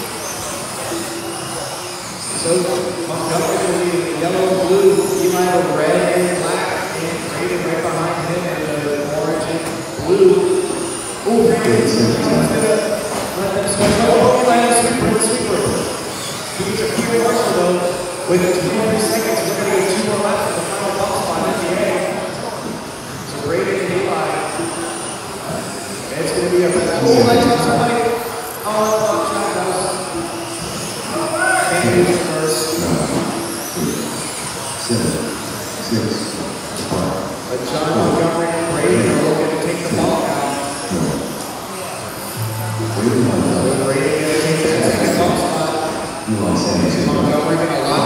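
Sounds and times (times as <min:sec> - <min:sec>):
rc car motors whining: 0:00.0 - 0:42.4
hall background noise: 0:00.0 - 0:48.0
race announcer calling: 0:02.2 - 0:22.4, 0:26.2 - 0:41.4, 0:42.4 - 0:48.0.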